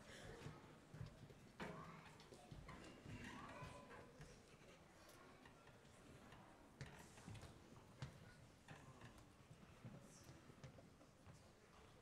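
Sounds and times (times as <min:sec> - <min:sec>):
faint clicks and taps: 0:06.8 - 0:11.9.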